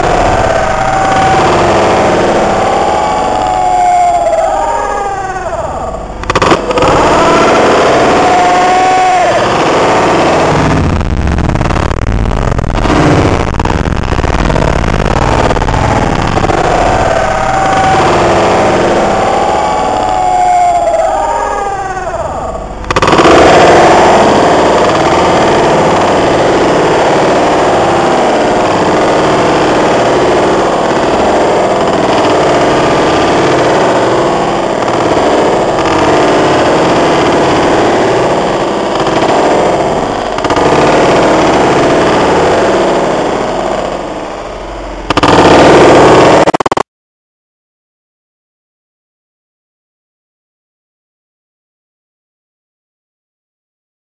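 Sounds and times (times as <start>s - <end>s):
wailing tones: 0.0s - 46.6s
dense distorted noise: 0.0s - 46.9s
sharp cracks: 0.0s - 46.9s.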